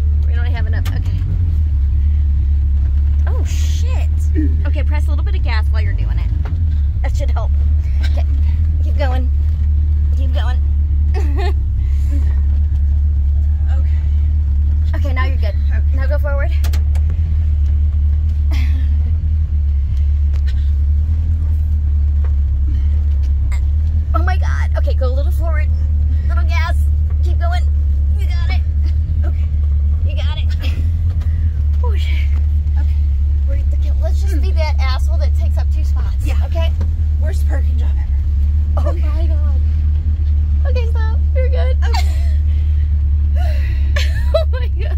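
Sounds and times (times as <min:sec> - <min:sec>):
car engine rumbling inside cabin: 0:00.0 - 0:44.9.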